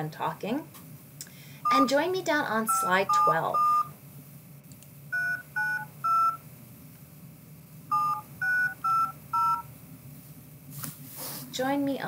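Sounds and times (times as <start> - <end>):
telephone keypad touch-tones: 2.7 - 3.9, 5.1 - 6.4, 7.9 - 9.7.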